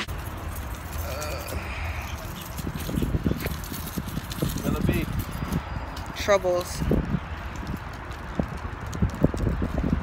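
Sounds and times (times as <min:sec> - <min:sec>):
wind rumble on microphone: 0:00.2 - 0:10.0
taps and scuffs: 0:02.2 - 0:10.0.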